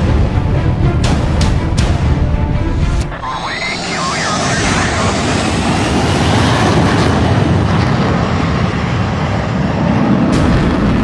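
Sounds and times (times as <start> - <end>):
jet engine roar: 3.0 - 11.0.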